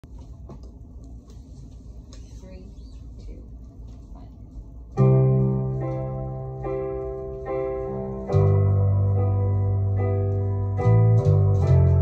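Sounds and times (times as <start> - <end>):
digital piano and guitar song: 5.0 - 12.0.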